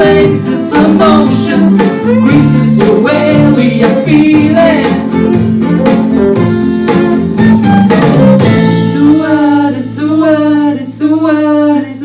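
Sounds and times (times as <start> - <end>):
steady drum beat: 0.0 - 9.6
guitar: 0.0 - 12.0
fiddle: 5.2 - 8.4.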